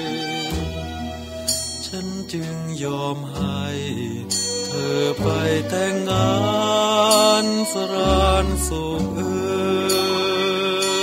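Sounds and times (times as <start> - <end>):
instrumental accompaniment with bass: 0.0 - 11.0
man singing: 1.8 - 11.0.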